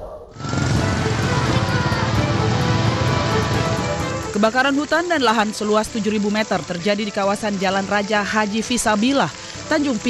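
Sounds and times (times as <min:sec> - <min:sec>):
fire roaring and crackling: 0:00.0 - 0:07.8, 0:08.4 - 0:10.0
background music: 0:00.4 - 0:10.0.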